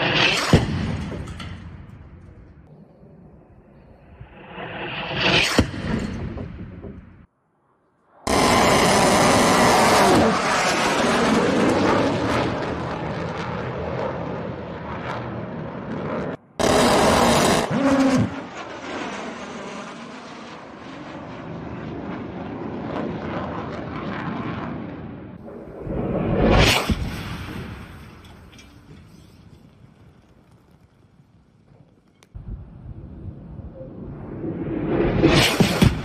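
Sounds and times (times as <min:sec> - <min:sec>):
jet roar passing: 0:00.0 - 0:01.9, 0:03.0 - 0:07.3, 0:08.2 - 0:29.0, 0:32.9 - 0:36.0
falling jet whine: 0:03.3 - 0:06.1, 0:33.6 - 0:36.0.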